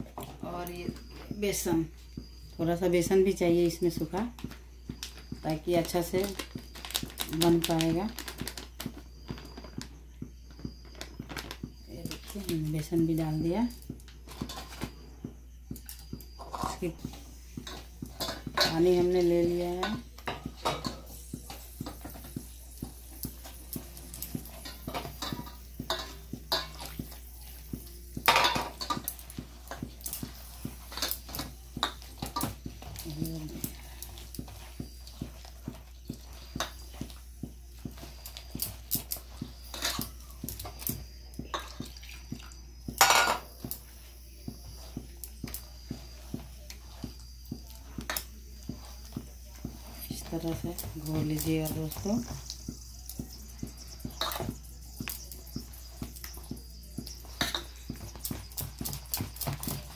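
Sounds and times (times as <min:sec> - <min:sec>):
hand mixing batter: 0:00.0 - 0:59.9.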